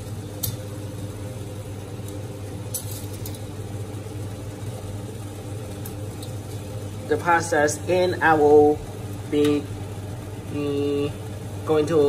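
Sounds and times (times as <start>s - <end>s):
steady low hum: 0.0s - 12.0s
water boiling in a pot: 0.0s - 12.0s.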